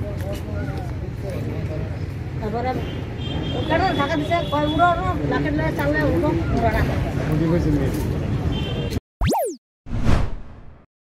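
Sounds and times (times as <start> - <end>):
voices in field recording: 0.0 - 9.0
electronic swoop: 9.2 - 10.9
noisy whoosh hit: 9.9 - 10.9.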